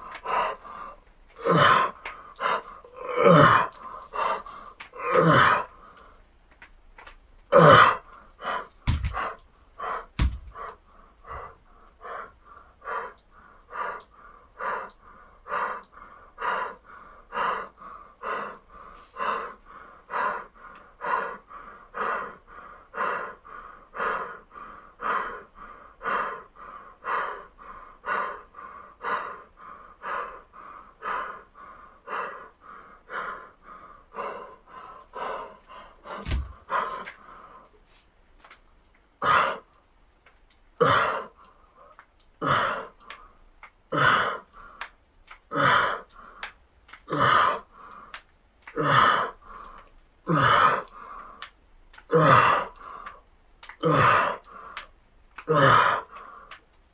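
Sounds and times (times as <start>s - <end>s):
man panting: 0.0s - 6.2s, 7.5s - 38.0s, 39.2s - 39.8s, 40.8s - 56.6s
low thumps: 8.8s - 9.4s, 10.2s - 10.7s.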